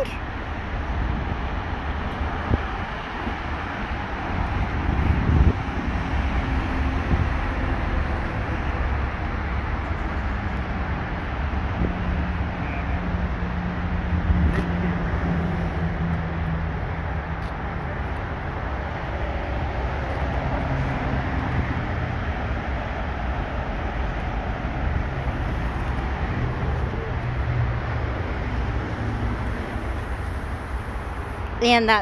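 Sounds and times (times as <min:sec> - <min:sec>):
traffic rumble and hiss: 0:00.0 - 0:32.0
faint engine hum: 0:03.8 - 0:32.0.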